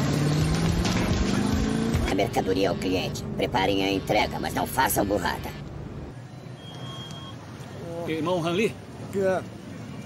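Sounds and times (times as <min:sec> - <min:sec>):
city traffic hum: 0:00.0 - 0:10.0
faint short high beep: 0:06.4 - 0:07.4.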